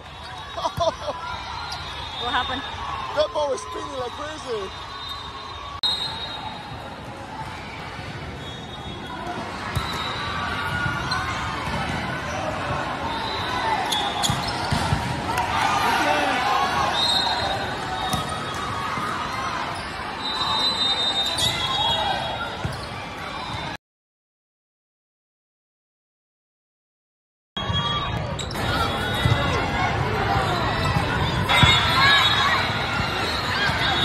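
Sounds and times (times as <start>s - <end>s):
spectators talking and calling out: 0.0s - 23.7s, 27.7s - 34.0s
sneaker squeaks on court: 13.8s - 15.0s, 22.6s - 23.0s
volleyball struck and bouncing: 14.3s - 15.5s.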